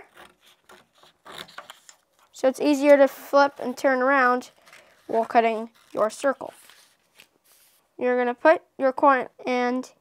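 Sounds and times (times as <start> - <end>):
paper sliding on wooden table: 5.0 - 7.9.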